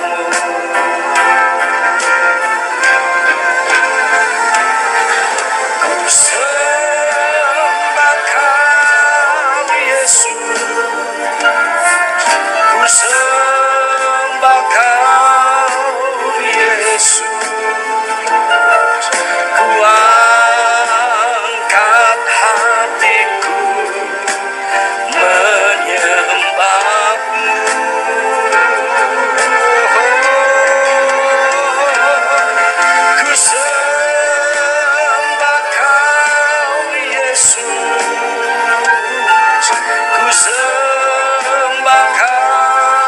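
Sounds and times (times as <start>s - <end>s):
man singing into a microphone: 0.0s - 3.0s, 5.2s - 43.0s
instrumental backing music: 0.0s - 43.0s.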